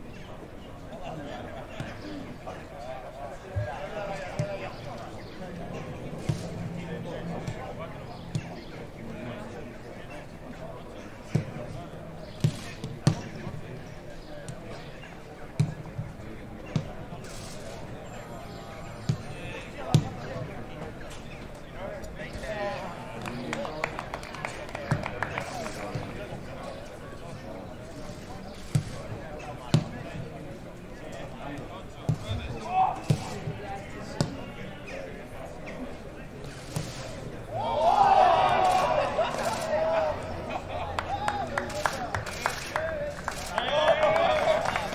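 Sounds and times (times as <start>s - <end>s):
distant voices: 0.0s - 44.9s.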